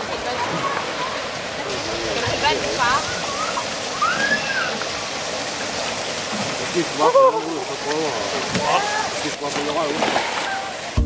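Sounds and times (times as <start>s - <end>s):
children calling: 0.0s - 5.4s
water rushing in splash pool: 0.0s - 11.0s.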